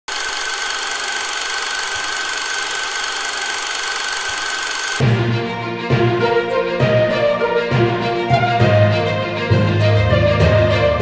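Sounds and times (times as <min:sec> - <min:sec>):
machine running with high whine: 0:00.1 - 0:05.0.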